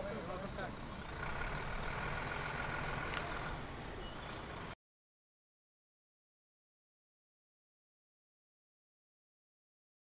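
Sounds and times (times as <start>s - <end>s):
engine running: 0.0s - 4.8s.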